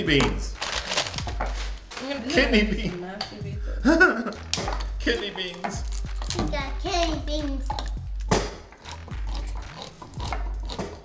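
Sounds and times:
background music with low bass: 0:00.0 - 0:11.0
manual can opener cranking: 0:07.5 - 0:11.0.

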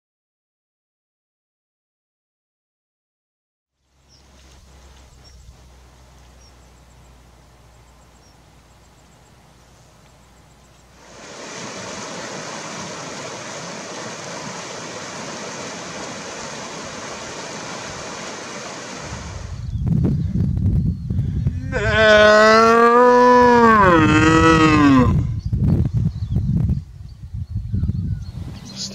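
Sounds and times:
rushing stream water: 0:10.9 - 0:19.6.

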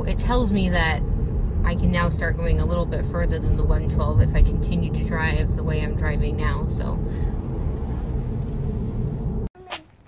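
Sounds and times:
road and tyre rumble in car: 0:00.0 - 0:09.5.

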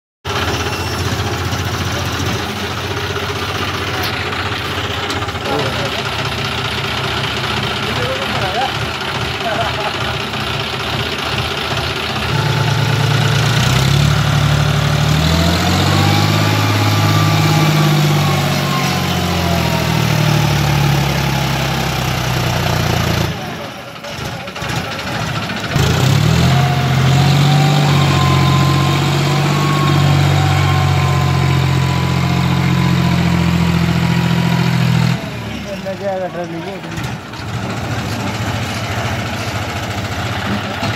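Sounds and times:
diesel tractor engine revving: 0:00.2 - 0:40.9.

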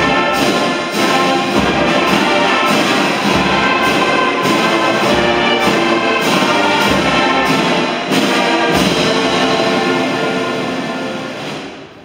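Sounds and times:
brass sustained chord: 0:00.0 - 0:11.6.

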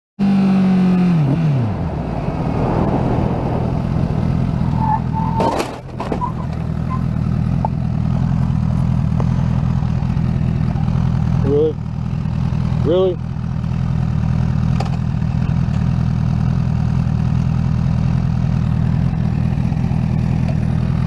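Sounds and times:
car striking motorcycle: 0:00.8 - 0:09.4, 0:14.6 - 0:15.9
high squeak: 0:04.6 - 0:07.2
motorcycle engine idling: 0:06.3 - 0:21.0.

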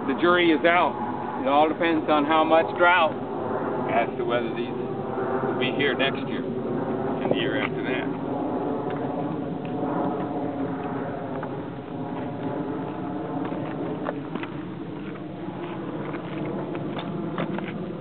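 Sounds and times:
engine-like drone: 0:00.0 - 0:18.0.

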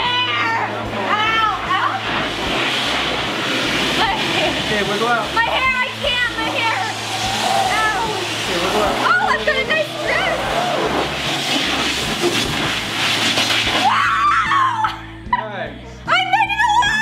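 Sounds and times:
girl laughing and squealing: 0:13.8 - 0:15.1.

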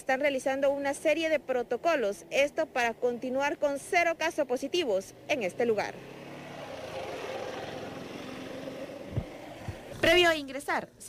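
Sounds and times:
motorcycle passing by: 0:00.9 - 0:10.2.

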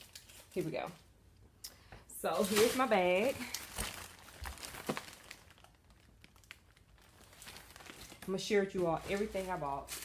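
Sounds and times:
plastic bag crinkling: 0:02.3 - 0:10.0.

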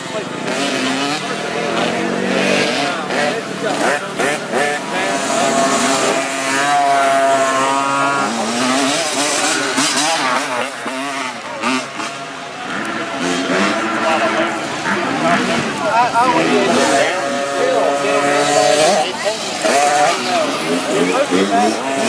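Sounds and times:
dirt bike engine revving: 0:00.0 - 0:22.0.

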